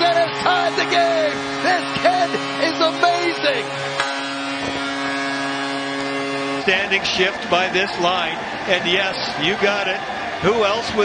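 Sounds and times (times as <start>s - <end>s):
goal horn long steady note: 0.0s - 10.7s
crowd cheering: 0.0s - 11.0s.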